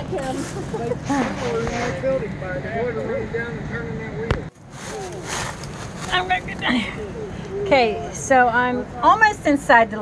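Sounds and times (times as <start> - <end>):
camera handling rubbing: 4.6 - 6.3.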